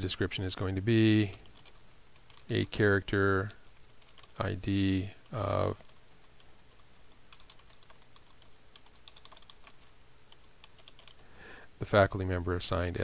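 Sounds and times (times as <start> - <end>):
typing on computer keyboard: 1.4 - 2.5, 3.4 - 4.4, 6.7 - 11.2.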